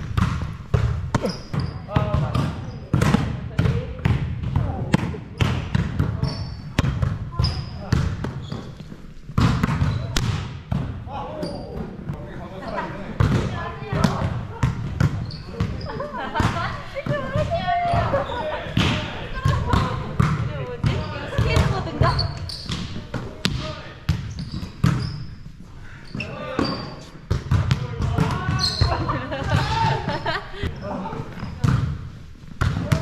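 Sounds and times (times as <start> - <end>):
volleyballs struck and bouncing: 0.0 - 11.1, 13.1 - 25.4, 26.2 - 30.1, 31.3 - 33.0
people talking: 15.4 - 22.3.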